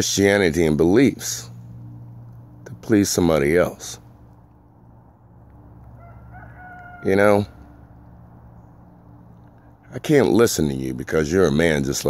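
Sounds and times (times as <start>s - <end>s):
faint rooster crow: 5.9s - 7.9s.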